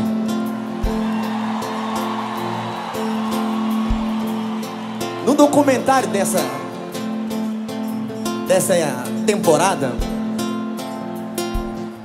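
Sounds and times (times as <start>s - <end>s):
band playing soft chords: 0.0s - 12.0s
stadium crowd noise: 0.0s - 12.0s.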